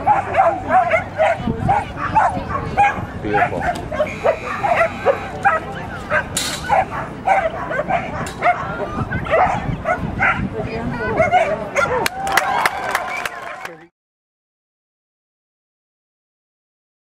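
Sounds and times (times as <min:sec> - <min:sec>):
dog barking and yipping: 0:00.0 - 0:12.1
voices and crowd noise: 0:00.0 - 0:13.9.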